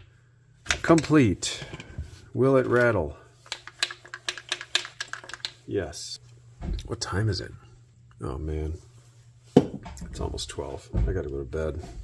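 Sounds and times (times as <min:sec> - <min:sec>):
chainsaw parts rattling: 0:03.5 - 0:05.5.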